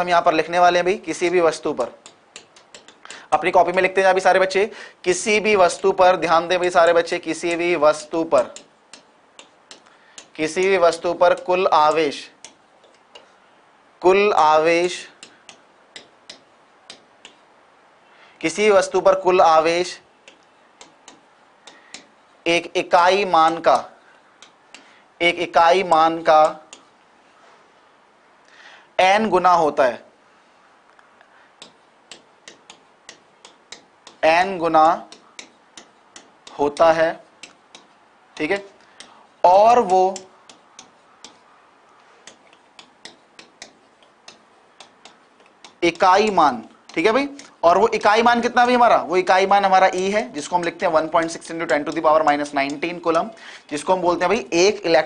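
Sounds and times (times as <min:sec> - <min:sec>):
pen tip clicking on writing board: 0:01.8 - 0:03.1, 0:31.6 - 0:39.2.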